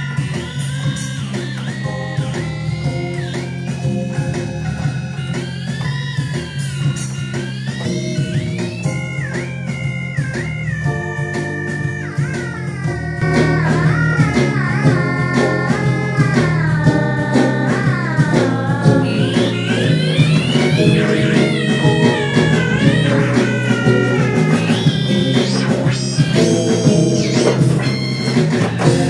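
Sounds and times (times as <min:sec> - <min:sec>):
bass and drum-machine backing: 0:00.0 - 0:29.0
keyboard lead with pitch bends: 0:00.0 - 0:29.0.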